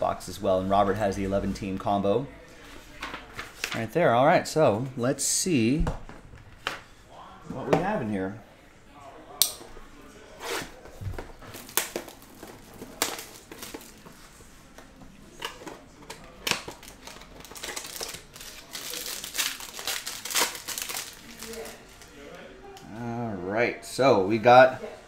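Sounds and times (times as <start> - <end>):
plastic wrap crinkling and tearing: 11.4 - 14.4, 16.2 - 22.2.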